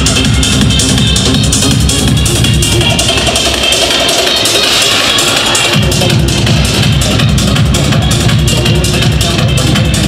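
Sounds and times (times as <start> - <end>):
techno through club sound system: 0.0 - 10.0.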